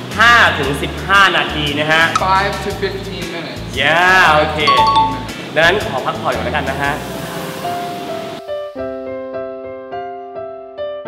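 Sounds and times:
gentle electric piano music: 0:04.7 - 0:05.3.

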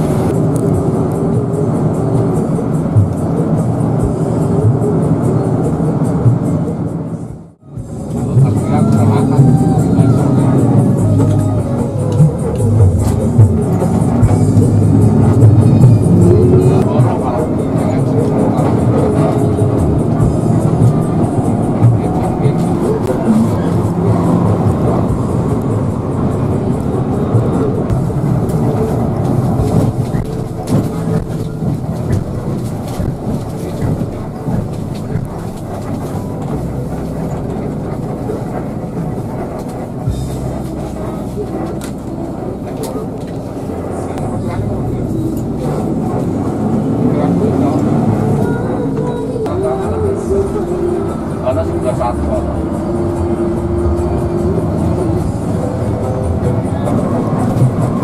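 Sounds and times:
bus engine and road rumble: 0:00.0 - 0:58.0
music with singing from tv: 0:00.0 - 0:58.0.

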